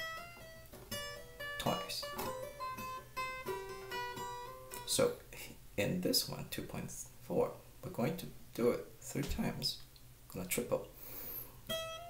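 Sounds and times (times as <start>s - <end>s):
acoustic guitar notes: 0.0s - 5.6s, 11.6s - 12.0s.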